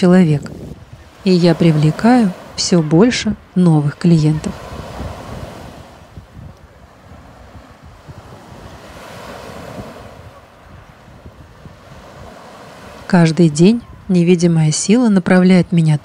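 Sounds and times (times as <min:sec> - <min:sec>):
sea surf washing ashore: 0:00.0 - 0:16.0.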